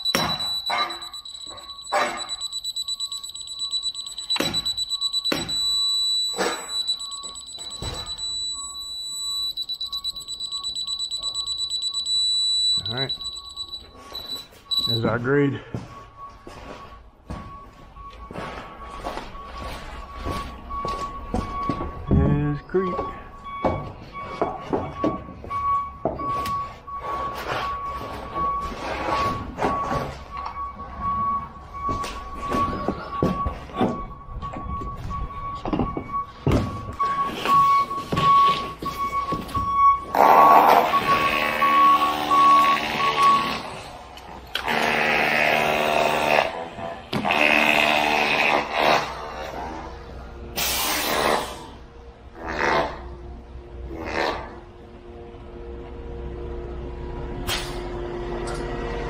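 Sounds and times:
laser receiver beeping: 0:00.0 - 0:15.2.

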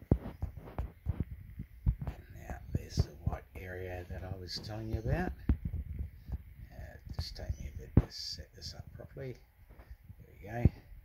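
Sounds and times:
camera handling knocks and rubs: 0:00.0 - 0:03.4, 0:04.2 - 0:08.2.

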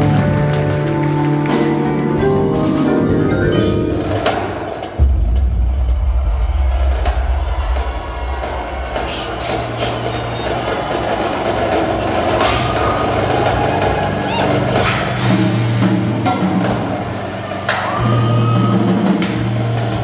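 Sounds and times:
drumline and ensemble performing: 0:00.0 - 0:20.0
sharp percussion strikes: 0:01.1 - 0:20.0.

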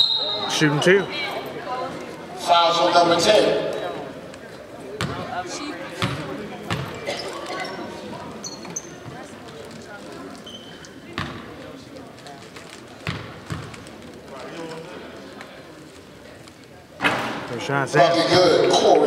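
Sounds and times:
murmur of voices: 0:00.0 - 0:19.0
basketball bouncing on wood floor: 0:05.0 - 0:05.2, 0:06.0 - 0:07.0, 0:13.0 - 0:13.7.

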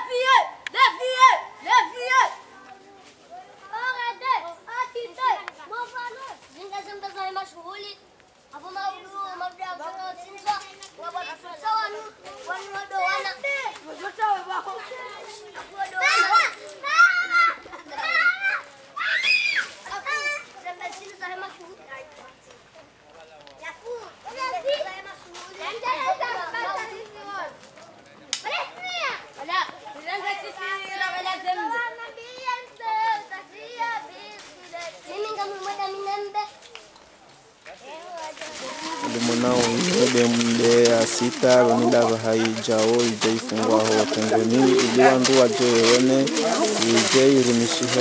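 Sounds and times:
children chattering and calling out: 0:00.0 - 0:48.0.

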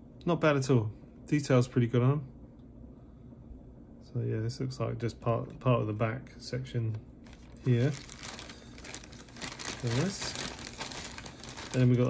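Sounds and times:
plastic bag crinkling: 0:07.2 - 0:12.0.

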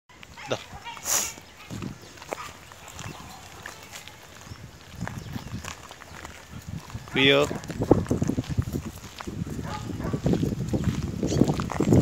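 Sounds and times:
loud hissing noise: 0:01.0 - 0:01.4.

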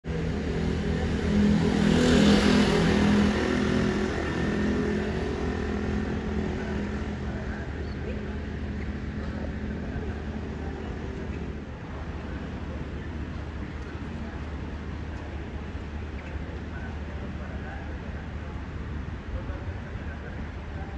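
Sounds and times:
vehicle engine humming: 0:00.0 - 0:20.9.

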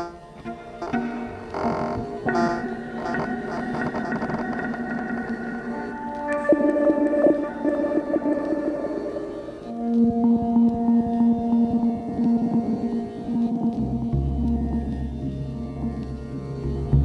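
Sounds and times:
bowed cello with electronics: 0:00.0 - 0:17.0.

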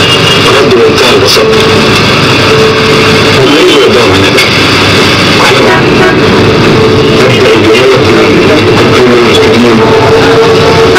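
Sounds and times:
crowd noise: 0:00.0 - 0:10.9
traffic: 0:00.0 - 0:10.9.

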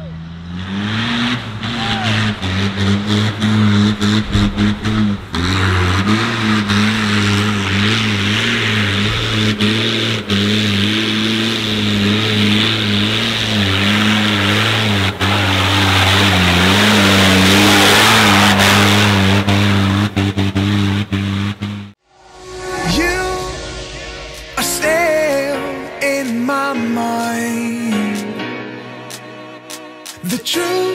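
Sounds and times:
off-road vehicle engine labouring: 0:00.0 - 0:22.0.

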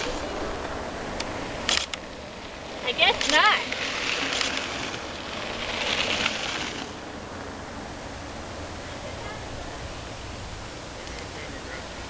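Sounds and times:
bike tyres hissing on dirt: 0:00.0 - 0:08.7.

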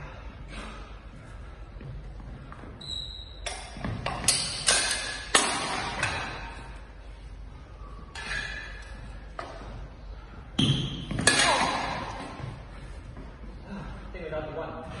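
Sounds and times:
swords and shields clashing: 0:03.4 - 0:06.6, 0:10.6 - 0:12.4.

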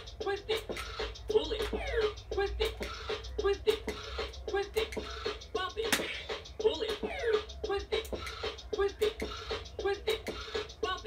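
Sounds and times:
electronic toy beat: 0:00.0 - 0:11.0.

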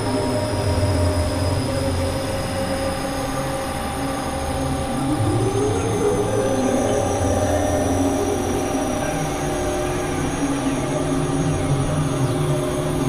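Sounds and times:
synthesizer drone music: 0:00.0 - 0:13.0.

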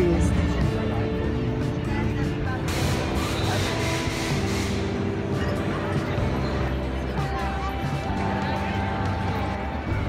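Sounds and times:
background music: 0:00.0 - 0:10.0
street crowd voices: 0:00.0 - 0:10.0.

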